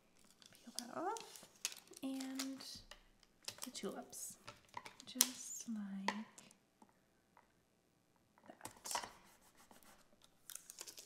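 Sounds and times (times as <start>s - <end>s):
plastic tape crinkling: 0.1s - 5.6s, 10.2s - 11.0s.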